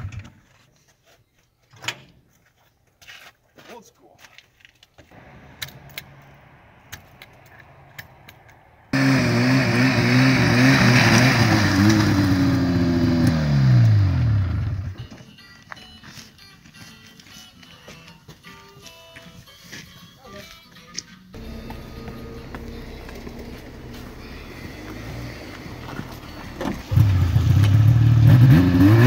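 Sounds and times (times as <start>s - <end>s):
snowmobile engine revving: 8.9s - 15.0s, 21.4s - 29.0s
low hum: 21.4s - 28.2s.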